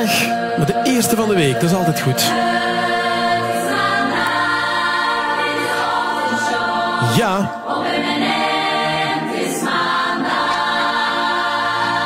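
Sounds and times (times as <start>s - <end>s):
choir singing jingle: 0.0s - 12.0s.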